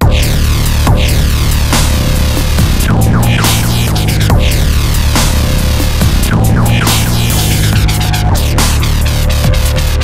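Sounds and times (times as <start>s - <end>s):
grinding throbbing bassline: 0.0s - 10.0s
heavy compressed drums: 0.0s - 10.0s.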